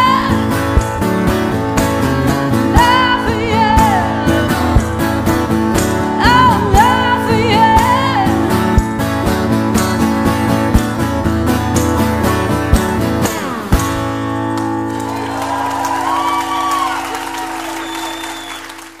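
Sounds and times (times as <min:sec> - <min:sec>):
acoustic guitar strumming: 0:00.0 - 0:19.0
audience applause: 0:14.6 - 0:19.0.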